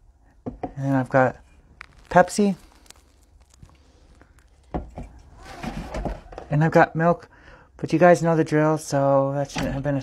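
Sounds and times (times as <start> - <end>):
drink containers being handled: 0.4 - 6.6.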